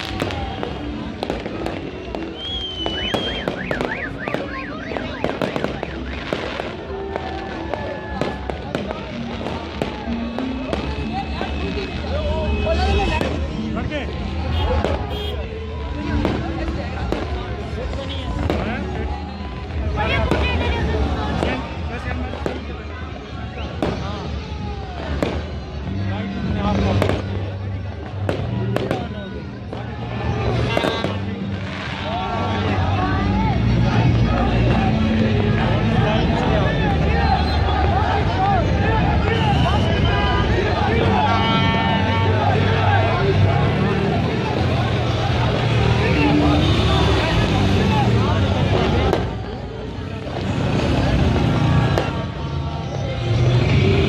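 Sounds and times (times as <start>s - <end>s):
fireworks popping and crackling: 0.0s - 22.8s, 23.6s - 24.4s, 25.0s - 25.7s, 26.7s - 27.4s, 28.0s - 32.3s, 44.5s - 52.4s
crowd voices: 0.0s - 54.0s
music: 0.0s - 54.0s.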